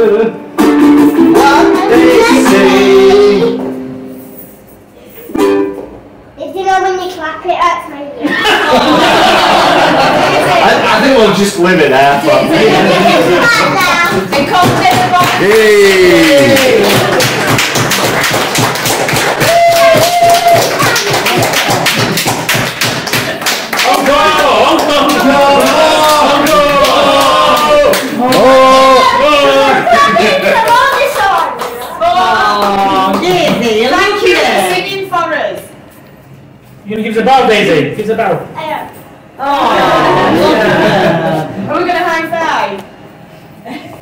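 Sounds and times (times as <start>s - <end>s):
ukulele chord strummed: 0.5s - 4.5s, 5.3s - 6.0s
audience clapping along: 13.9s - 33.7s.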